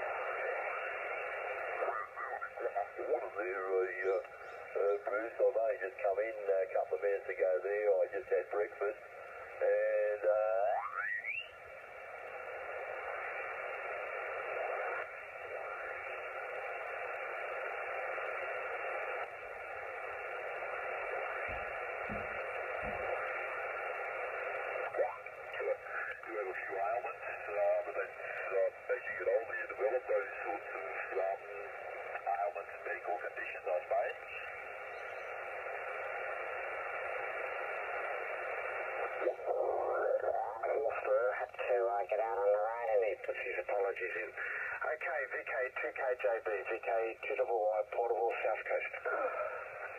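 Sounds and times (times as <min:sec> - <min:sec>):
radio band hiss: 0:00.0 - 0:49.9
garbled radio speech: 0:00.1 - 0:11.1, 0:20.0 - 0:34.6, 0:37.6 - 0:49.9.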